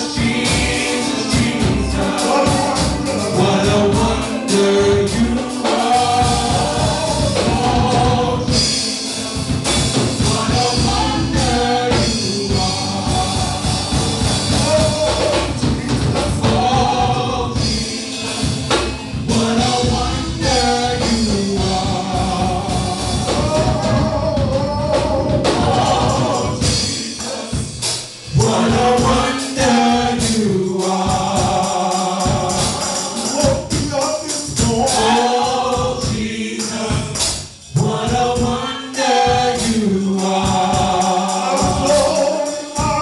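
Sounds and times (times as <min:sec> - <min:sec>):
backing voices: 0:00.0 - 0:36.9
band with drums: 0:00.0 - 0:43.0
man singing gospel lead: 0:00.0 - 0:43.0.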